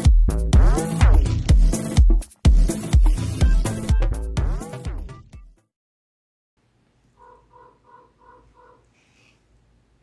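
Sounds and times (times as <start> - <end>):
bird calling: 7.2 - 9.3.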